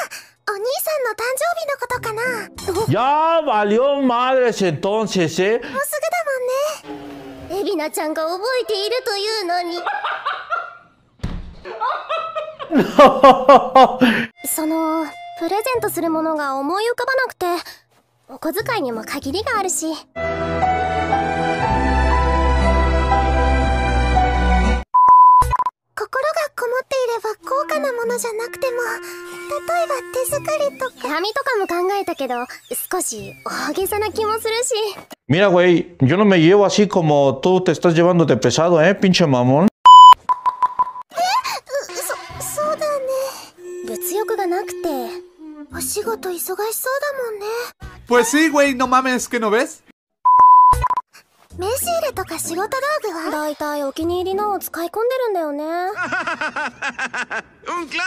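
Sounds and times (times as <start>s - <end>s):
background music: 1.3s - 5.6s, 6.8s - 9.8s, 12.8s - 17.0s, 18.6s - 24.8s, 27.0s - 31.9s, 41.2s - 49.8s, 51.5s - 56.0s
high electronic beep: 39.9s - 41.0s
high test-tone beep: 39.9s - 41.0s, 43.6s - 45.4s, 50.3s - 51.0s.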